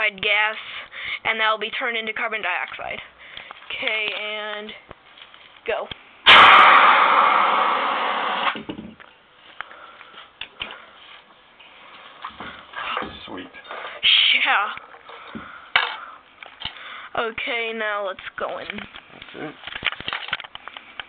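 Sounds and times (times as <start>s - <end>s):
fire extinguisher hissing blast: 6.2s - 8.6s.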